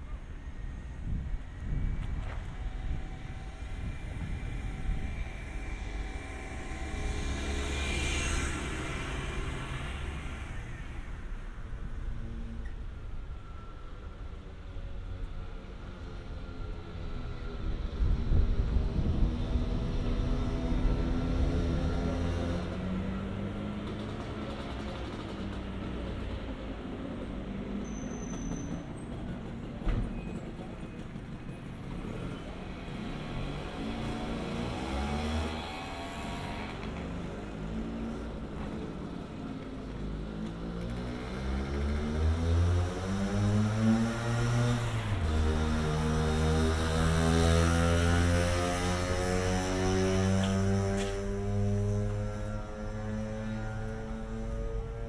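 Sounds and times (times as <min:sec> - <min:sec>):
vehicle engine accelerating: 0:18.2 - 0:26.1, 0:33.2 - 0:39.2, 0:39.9 - 0:55.0.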